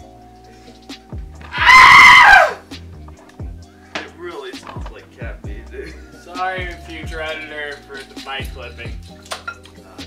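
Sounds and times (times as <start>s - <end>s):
background music with steady beat: 0.0s - 10.0s
loud scream: 1.4s - 2.6s.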